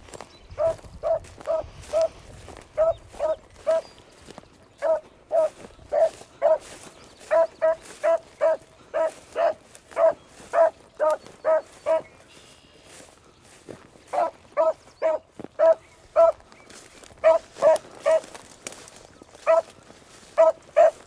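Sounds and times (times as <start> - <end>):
dog baying: 0.6 - 3.9, 4.8 - 6.6, 7.3 - 12.1, 14.1 - 16.4, 17.2 - 18.3, 19.4 - 19.7, 20.4 - 21.0.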